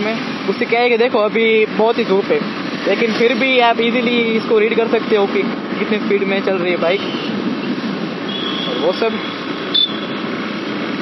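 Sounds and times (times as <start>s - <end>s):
wind rushing over microphone: 0.2s - 11.0s.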